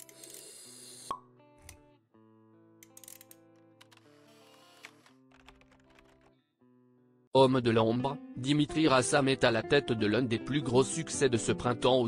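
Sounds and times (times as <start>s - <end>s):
guitar-like intro music: 1.1s - 12.0s.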